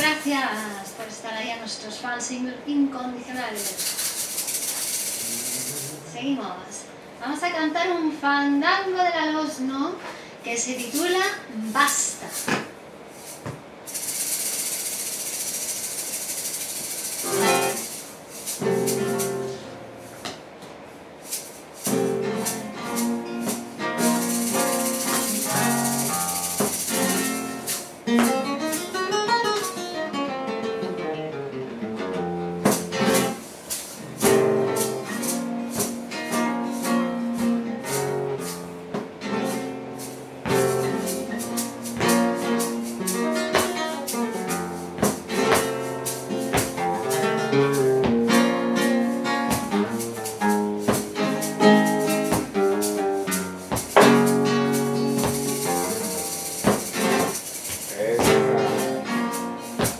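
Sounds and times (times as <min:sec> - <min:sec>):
flamenco guitar playing: 0:00.0 - 0:02.4, 0:03.1 - 0:06.8, 0:10.6 - 0:59.9.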